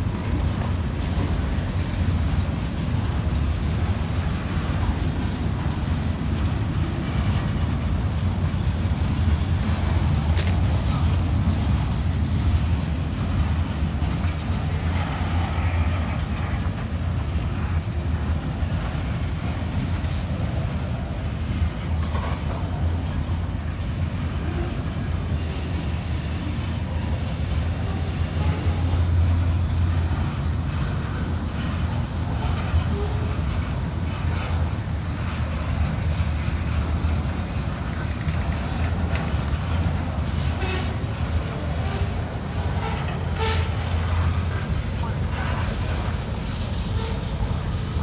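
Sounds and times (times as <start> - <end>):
train wheels rumbling on rails: 0.0 - 48.0.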